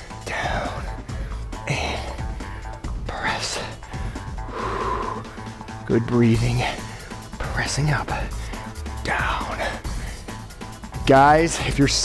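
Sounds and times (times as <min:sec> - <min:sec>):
background music: 0:00.0 - 0:12.0
person breathing out hard: 0:03.8 - 0:05.7.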